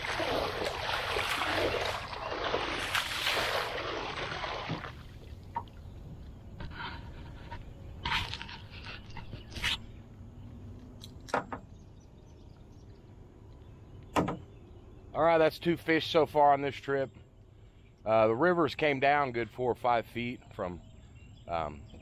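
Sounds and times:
fish thrashing and splashing: 0.0s - 5.8s.

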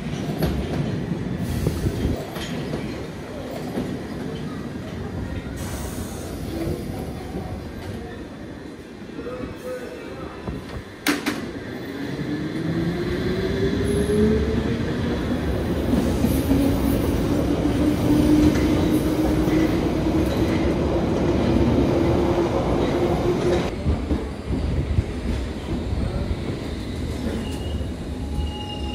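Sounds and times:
train wheels rumbling and clattering: 0.0s - 8.2s, 10.4s - 28.9s
train rumbling: 10.4s - 28.9s
high wheel squeal: 27.2s - 28.9s.

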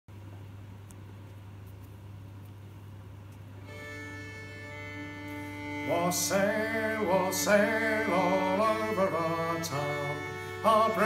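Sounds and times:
low steady hum: 0.1s - 11.0s
fiddle bowed notes: 3.6s - 11.0s
man singing: 5.6s - 11.0s.

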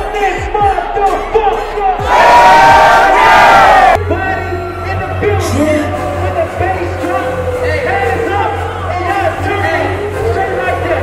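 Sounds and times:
crowd shouting: 1.1s - 4.0s.

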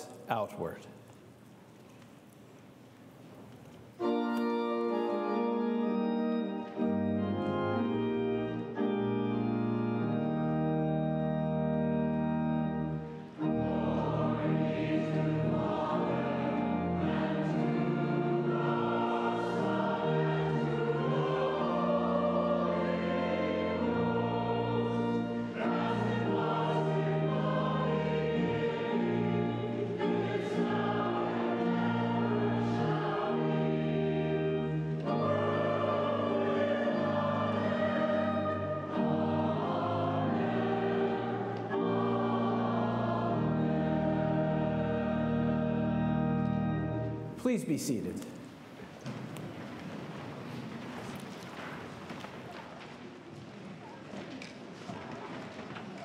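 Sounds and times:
congregation and choir singing: 3.8s - 56.0s
pipe organ chords: 3.9s - 48.6s.

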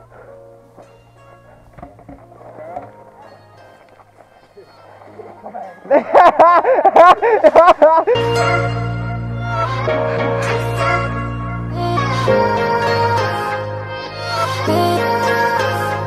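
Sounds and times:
faint background music: 0.0s - 7.1s
hearty laughter: 5.2s - 8.2s.

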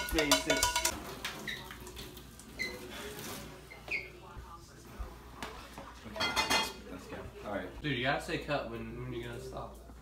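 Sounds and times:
water trickling into a sink: 1.0s - 2.9s.

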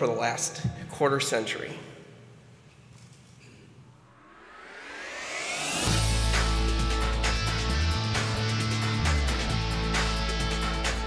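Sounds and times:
rising whooshing sweep: 4.0s - 8.0s.

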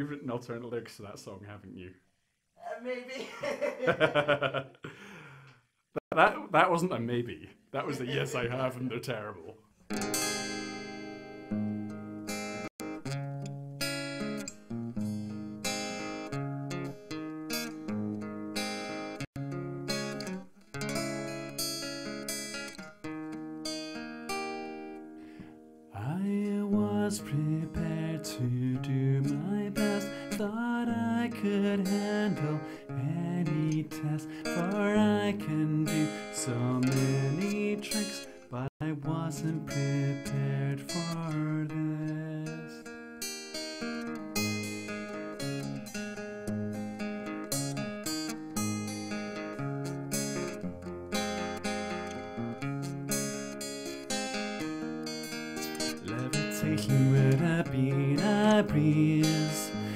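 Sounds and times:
acoustic guitar playing: 6.1s - 59.9s.

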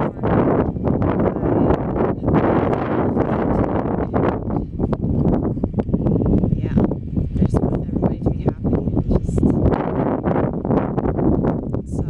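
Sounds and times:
wind blowing across microphone: 0.0s - 12.0s.

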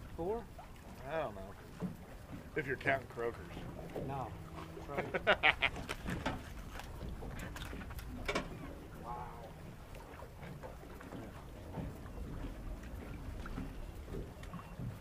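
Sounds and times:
rumble of water and air: 0.0s - 15.0s
tackle knocking on hull: 1.4s - 9.6s.

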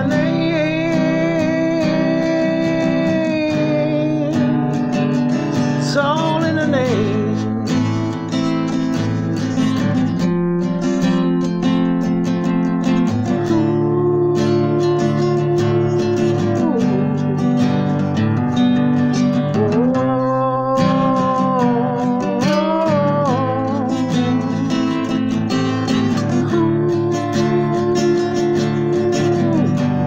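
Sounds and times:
man singing: 0.0s - 10.4s, 12.8s - 30.0s
acoustic guitar strumming: 0.0s - 30.0s.

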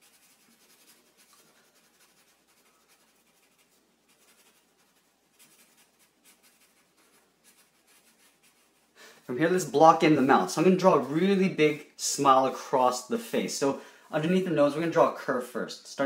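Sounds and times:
marker scratching on paper: 0.0s - 11.2s.

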